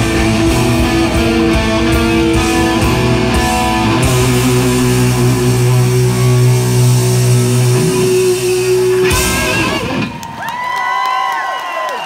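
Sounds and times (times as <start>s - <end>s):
hard rock band with electric guitars: 0.0s - 10.5s.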